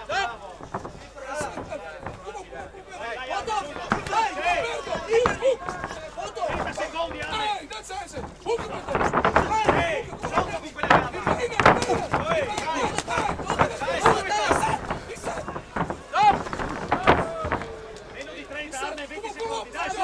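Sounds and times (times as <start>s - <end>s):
voices shouting: 0.0s - 20.0s.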